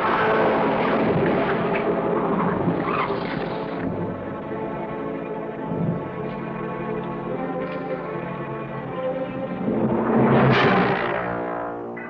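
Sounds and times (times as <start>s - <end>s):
loud rushing noise: 0.0s - 4.2s, 9.4s - 11.5s
orchestral film score: 0.0s - 12.0s.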